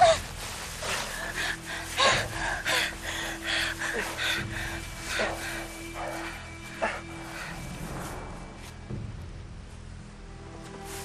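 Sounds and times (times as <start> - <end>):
person gasping breaths: 0.0 - 7.7.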